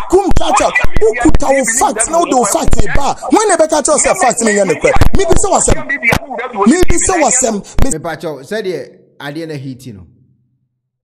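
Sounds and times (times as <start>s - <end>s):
person talking rapidly: 0.0s - 10.1s.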